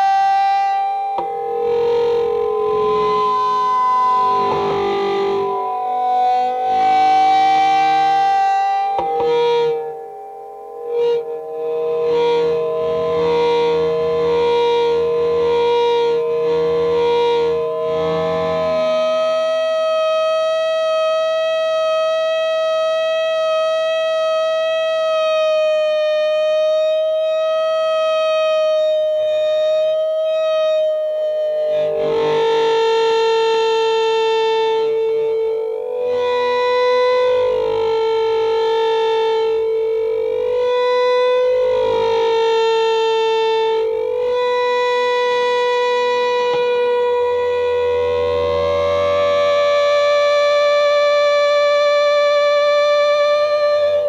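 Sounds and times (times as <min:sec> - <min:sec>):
electric guitar with effects: 0:00.0 - 0:54.0.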